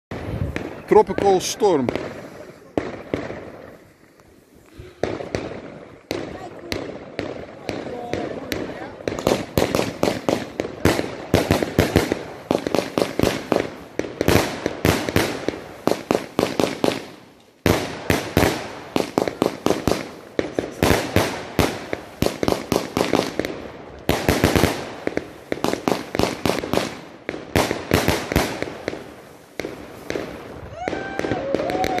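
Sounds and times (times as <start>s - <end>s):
fireworks cracking: 0.1s - 32.0s.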